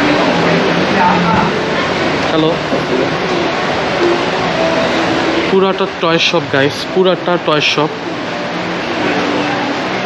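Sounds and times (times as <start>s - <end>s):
shopping mall background noise: 0.0s - 10.0s.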